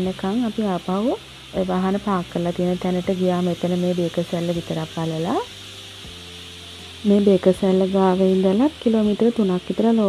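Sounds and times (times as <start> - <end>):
steady hiss: 0.0 - 10.0.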